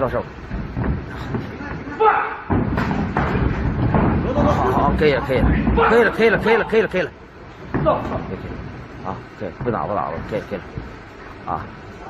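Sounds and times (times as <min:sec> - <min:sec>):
footwork on canvas: 0:00.0 - 0:12.0
man shouting: 0:02.0 - 0:02.5, 0:05.7 - 0:06.8.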